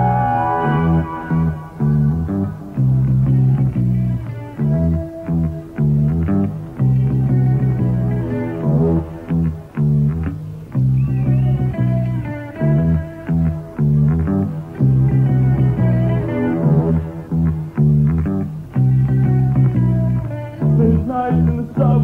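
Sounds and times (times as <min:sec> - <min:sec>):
bass guitar line: 0:00.0 - 0:22.0
electric guitar notes: 0:00.0 - 0:22.0.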